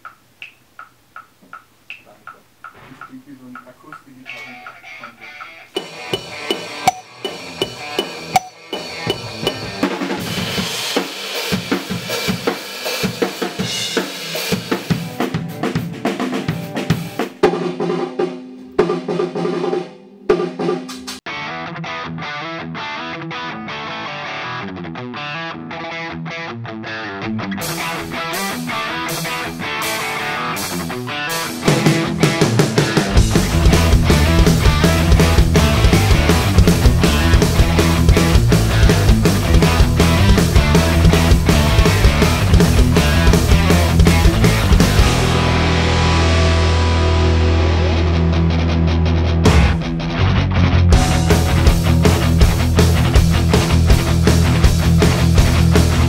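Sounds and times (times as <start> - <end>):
steady ticking: 0.0 - 9.8
instrumental rock music: 2.3 - 56.0
drum rolls and fills: 5.8 - 21.2, 27.6 - 46.8, 50.9 - 56.0.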